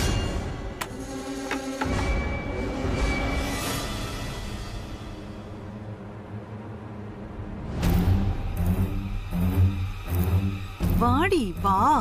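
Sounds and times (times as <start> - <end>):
dramatic score with low drone: 0.0 - 12.0.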